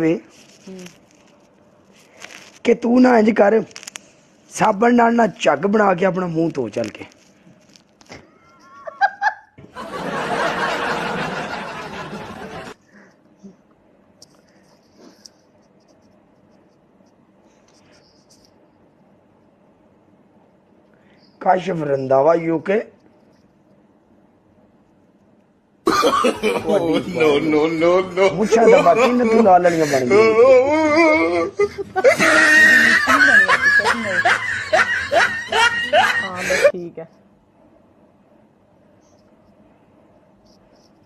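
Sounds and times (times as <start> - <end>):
scratchy rubbing on microphone: 0.2 - 2.7
hearty laughter: 8.6 - 12.8, 25.9 - 36.7.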